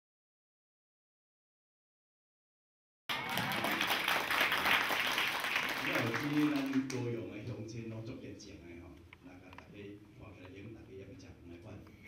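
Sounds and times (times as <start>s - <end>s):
audience applause: 3.1s - 7.0s.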